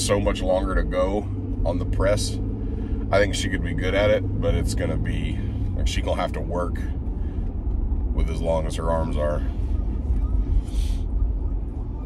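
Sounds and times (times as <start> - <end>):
truck road and engine rumble: 0.0 - 12.0.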